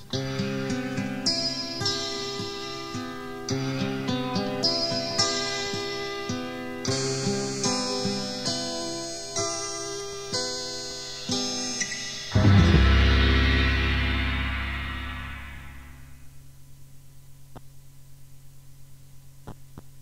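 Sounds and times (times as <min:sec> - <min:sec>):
guitar chords picked: 0:00.0 - 0:16.5
faint tape hum: 0:00.0 - 0:20.0.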